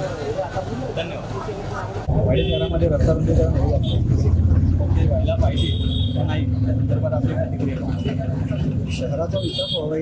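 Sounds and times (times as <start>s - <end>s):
men talking: 0.0s - 10.0s
vehicle engine rumble: 0.0s - 10.0s.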